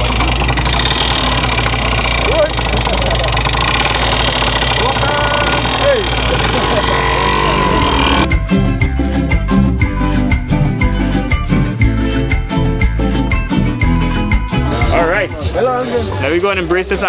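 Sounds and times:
vehicle engine idling: 0:00.0 - 0:08.3
voices: 0:02.1 - 0:08.3
music: 0:08.2 - 0:17.0.

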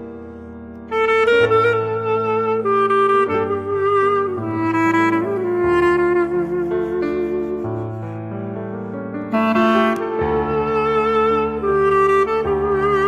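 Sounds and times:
clarinet playing ornamented melody: 0:00.3 - 0:08.5, 0:09.2 - 0:13.0.

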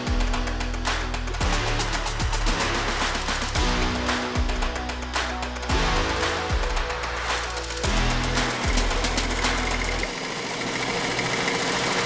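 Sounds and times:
background music with a beat: 0:00.0 - 0:10.3
embroidery machine stitching: 0:08.5 - 0:12.0.

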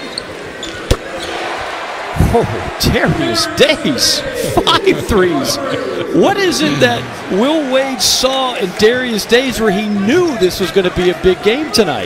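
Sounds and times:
arena crowd noise: 0:00.0 - 0:12.0.

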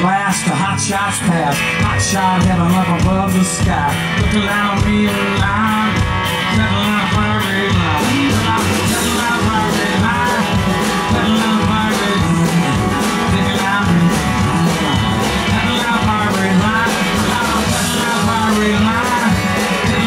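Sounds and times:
country-rock band playing: 0:00.0 - 0:20.0.

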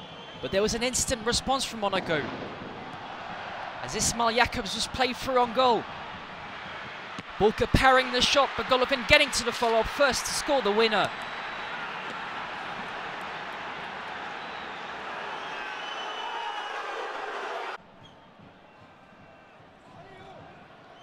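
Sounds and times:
stadium crowd cheering: 0:00.0 - 0:21.0.

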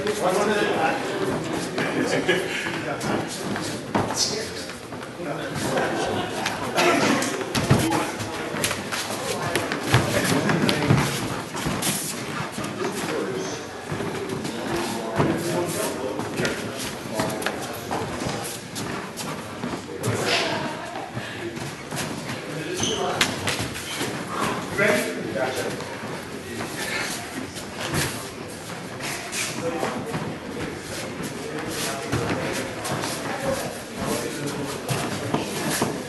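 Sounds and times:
voices in a large hall: 0:00.0 - 0:36.0.

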